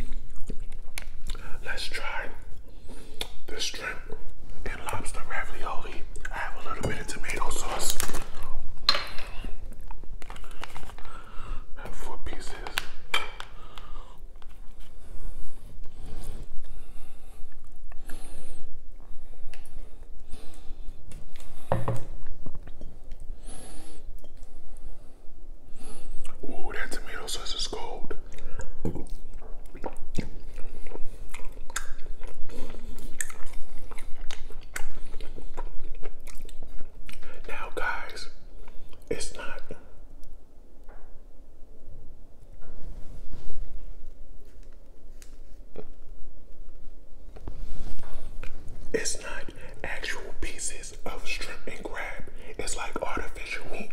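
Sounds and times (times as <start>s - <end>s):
chewing and mouth smacking: 0.0s - 1.5s, 28.2s - 37.3s.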